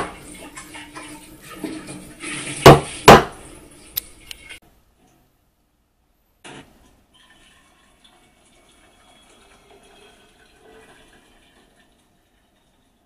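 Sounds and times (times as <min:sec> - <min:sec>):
water trickling onto coffee grounds: 0:07.1 - 0:13.0.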